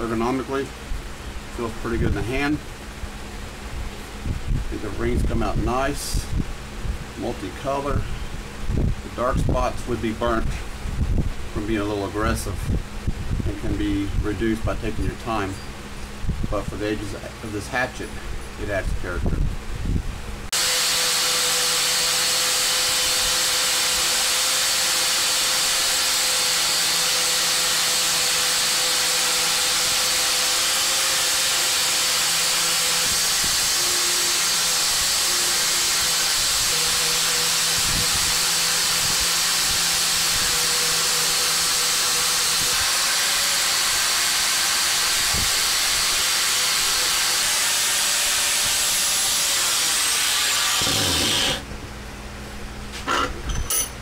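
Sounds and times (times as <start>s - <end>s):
angle grinder polishing steel: 20.6s - 51.6s.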